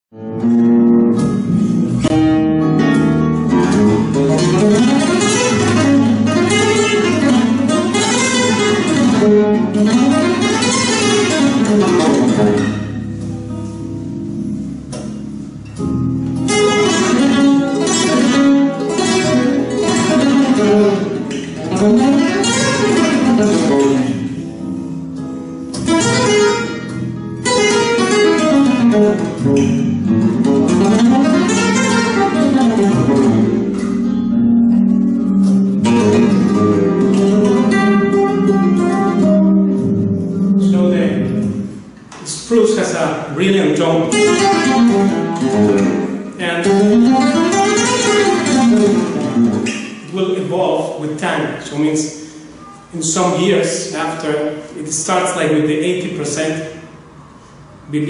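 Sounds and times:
solo flamenco guitar: 0.1 - 50.7, 51.5 - 55.1.

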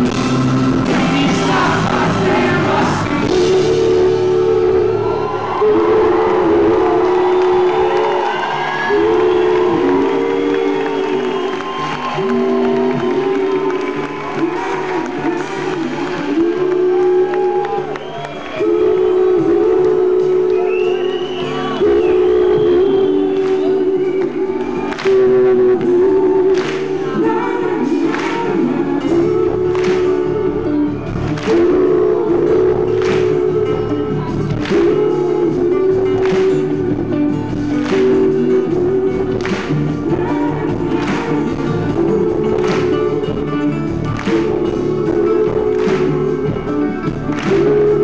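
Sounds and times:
live band playing: 0.0 - 48.0
voices singing held notes: 0.0 - 48.0.

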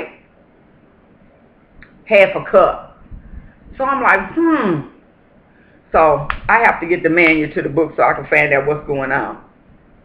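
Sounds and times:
person speaking: 1.8 - 5.0, 5.9 - 9.5.

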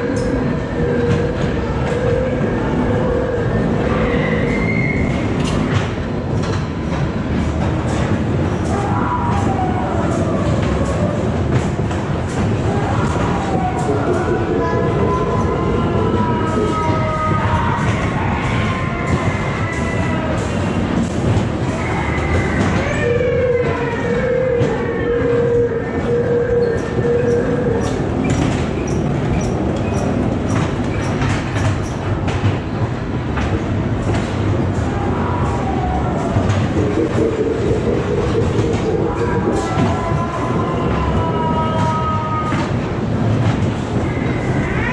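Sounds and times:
train car rumbling on track: 0.0 - 44.9.

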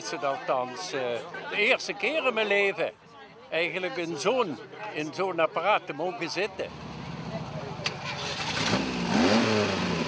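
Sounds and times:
engine idling and revving: 6.7 - 10.0.

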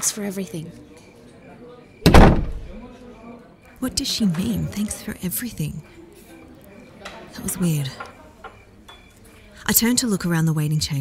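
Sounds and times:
door shutting with heavy bang: 2.0 - 2.8.

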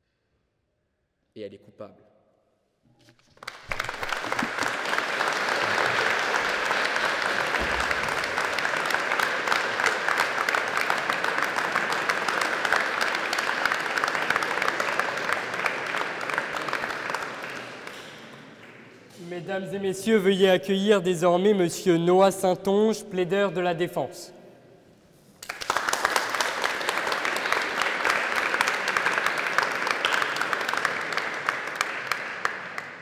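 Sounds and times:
audience applauding: 3.3 - 19.2, 25.4 - 33.0.

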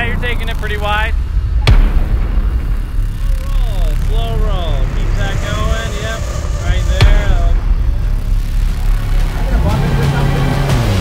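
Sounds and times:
truck engine low rumble: 0.0 - 11.0.

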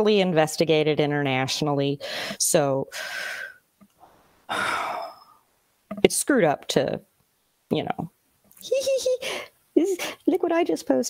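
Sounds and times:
person sighing: 4.0 - 5.4.

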